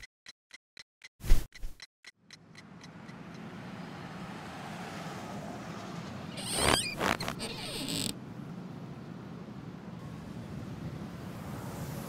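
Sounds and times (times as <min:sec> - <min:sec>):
regular ticking: 0:00.0 - 0:03.8.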